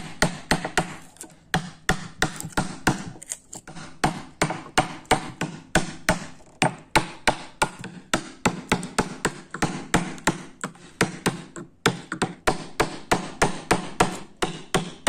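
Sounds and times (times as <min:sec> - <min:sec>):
chisel knocking into hardwood: 0:00.0 - 0:15.0.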